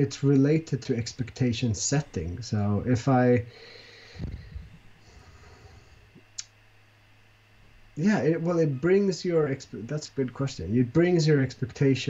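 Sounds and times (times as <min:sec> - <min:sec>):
steady low hum: 0:00.0 - 0:12.0
low thump: 0:04.2 - 0:04.7.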